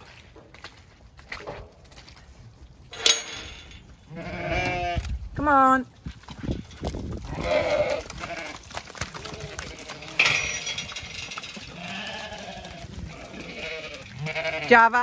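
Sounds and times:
sheep bleating: 0:04.1 - 0:05.0, 0:07.3 - 0:08.6, 0:11.7 - 0:15.0.

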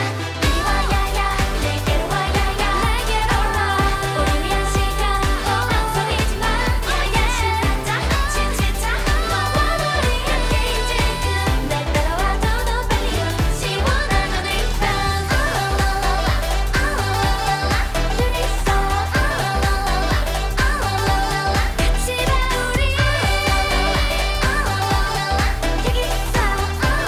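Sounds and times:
electronic dance-pop backing track: 0:00.0 - 0:27.0
women singing: 0:00.0 - 0:27.0.

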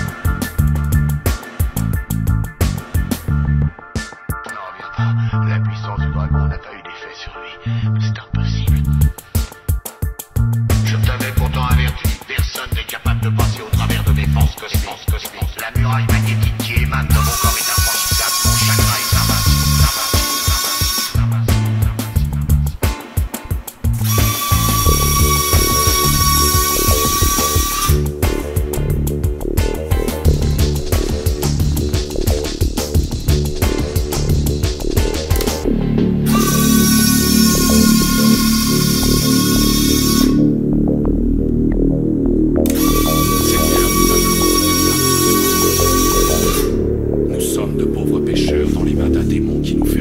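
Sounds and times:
background music with steady beat: 0:00.0 - 0:07.7, 0:08.3 - 0:50.0
electric motor whine: 0:17.4 - 0:21.2, 0:24.0 - 0:28.0, 0:36.3 - 0:40.4, 0:42.7 - 0:46.8.

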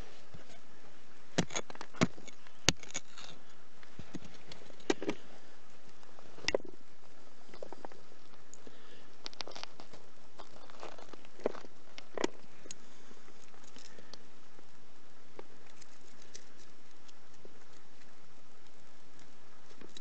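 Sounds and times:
soil crumbling: 0:01.3 - 0:05.3, 0:07.5 - 0:14.2.

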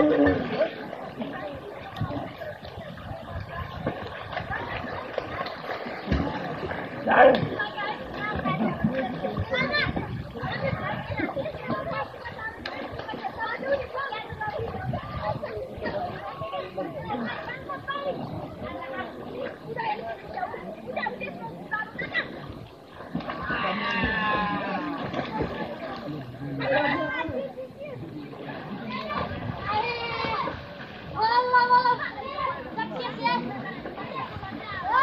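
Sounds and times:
young voices chattering: 0:00.0 - 0:35.0
children shouting while playing: 0:23.3 - 0:25.6, 0:28.9 - 0:30.6, 0:31.2 - 0:35.0.

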